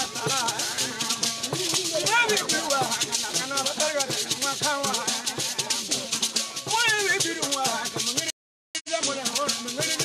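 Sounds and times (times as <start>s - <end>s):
small lute: 0.0s - 8.2s
gourd shakers rattling: 0.0s - 10.0s
voices singing: 0.0s - 10.0s.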